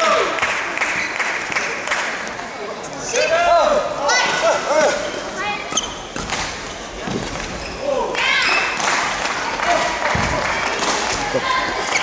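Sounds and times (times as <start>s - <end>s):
shoes squeaking on court floor: 4.2s - 8.8s, 11.0s - 12.0s.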